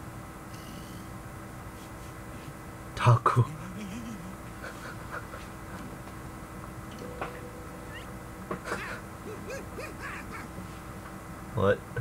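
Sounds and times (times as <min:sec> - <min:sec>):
faint hum: 0:00.0 - 0:12.0
cartoon creature calls: 0:07.8 - 0:08.1, 0:08.7 - 0:10.5.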